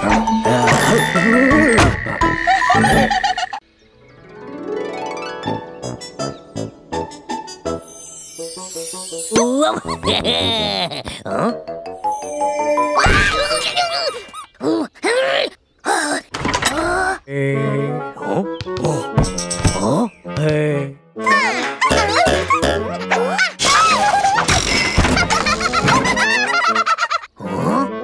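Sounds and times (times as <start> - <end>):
cartoon character vocal sounds: 0.0 - 3.4, 27.4 - 28.0.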